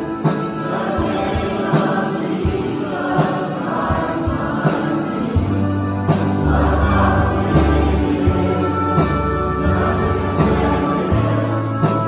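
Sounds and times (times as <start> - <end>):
steady drum beat: 0.0 - 12.0
voices singing: 0.0 - 12.0
worship band playing: 0.0 - 12.0
bass line: 5.4 - 12.0.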